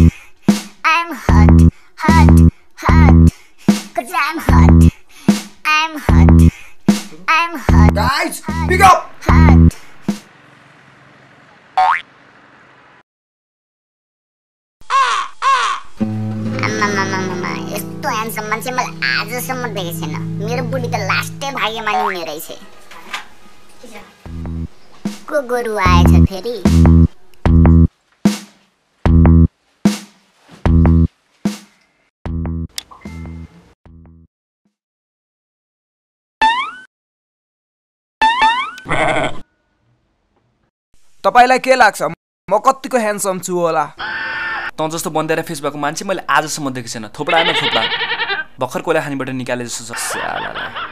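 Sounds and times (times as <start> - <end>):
crow cawing: 14.8 - 15.9, 44.0 - 44.7
quivering bleat: 38.9 - 39.4, 44.0 - 44.7, 47.3 - 48.6.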